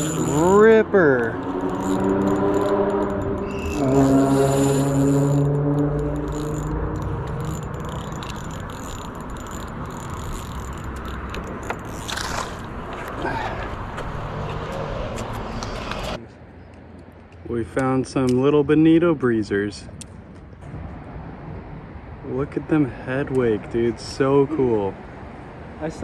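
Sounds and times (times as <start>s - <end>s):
fishing reel clicks and scrapes: 0.0s - 13.4s.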